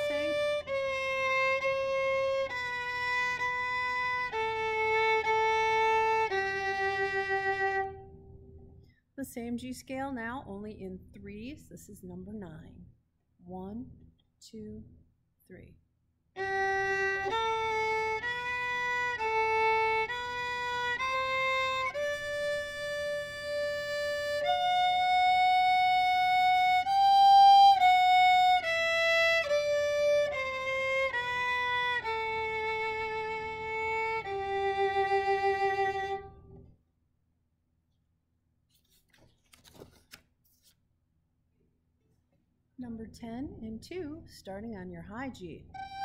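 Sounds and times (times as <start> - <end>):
solo violin playing a scale: 0.0 - 8.4, 16.4 - 36.6, 45.7 - 46.0.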